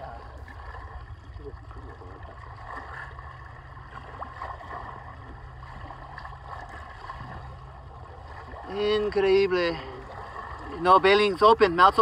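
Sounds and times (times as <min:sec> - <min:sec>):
steady low rumble: 0:00.0 - 0:12.0
water lapping against boat hull: 0:00.0 - 0:12.0.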